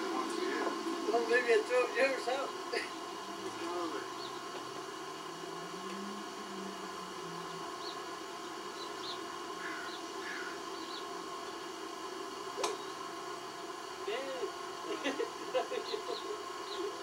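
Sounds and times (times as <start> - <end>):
low hum and hiss: 0.0 - 17.0.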